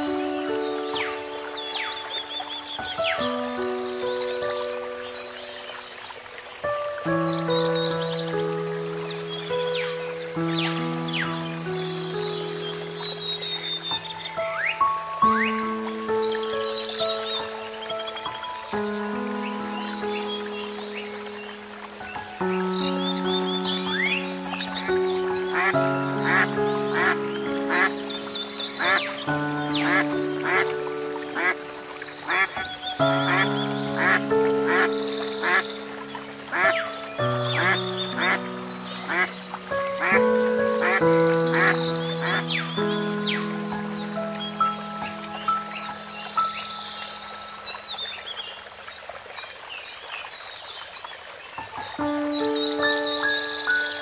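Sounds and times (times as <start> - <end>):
soft instrumental music: 0.0 - 49.4, 51.6 - 54.0.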